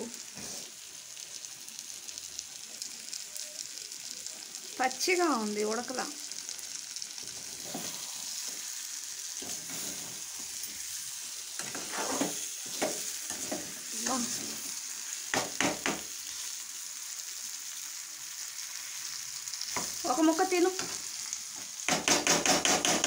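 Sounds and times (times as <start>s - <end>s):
food sizzling in a metal pan: 0.0s - 23.0s
metal spatula scraping a pan: 7.4s - 8.2s, 9.4s - 11.0s, 11.6s - 14.8s.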